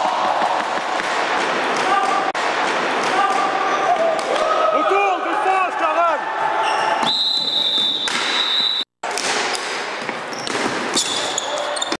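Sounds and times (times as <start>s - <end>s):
hockey sticks and ball knocking: 0.0s - 4.4s, 8.0s - 12.0s
sneakers squeaking on gym floor: 10.0s - 12.0s.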